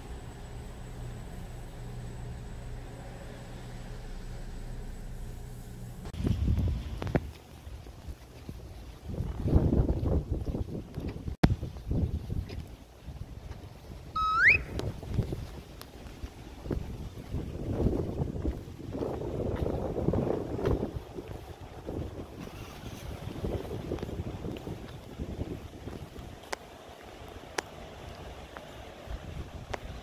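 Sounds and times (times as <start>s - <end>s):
wind buffeting microphone: 6.1s - 30.0s
short rising whistle-like tone: 14.2s - 14.8s.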